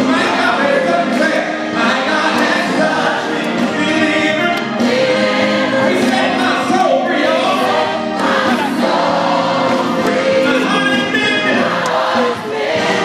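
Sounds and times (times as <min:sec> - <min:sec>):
many voices singing along: 0:00.0 - 0:13.0.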